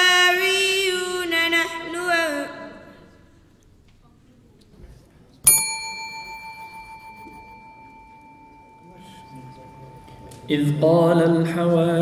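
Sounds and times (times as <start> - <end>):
desk bell ringing: 5.5 - 10.8.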